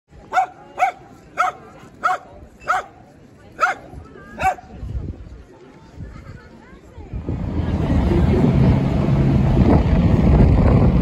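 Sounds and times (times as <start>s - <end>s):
dog barking: 0.3s - 3.0s, 3.6s - 3.8s, 4.4s - 4.7s
low rumble: 7.2s - 11.0s.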